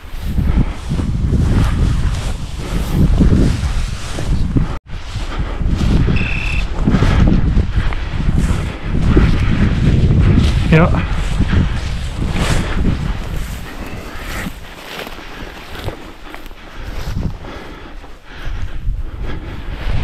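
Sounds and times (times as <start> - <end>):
wind buffeting microphone: 0.0 - 20.0
short high beep: 6.1 - 6.7
grass swishing against legs: 11.8 - 17.1.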